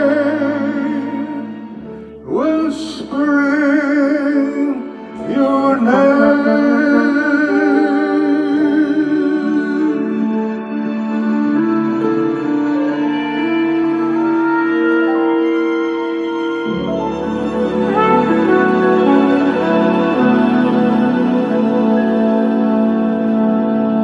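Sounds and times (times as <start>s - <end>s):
person singing long notes with vibrato: 0.0s - 24.0s
sustained chord accompaniment: 0.0s - 24.0s.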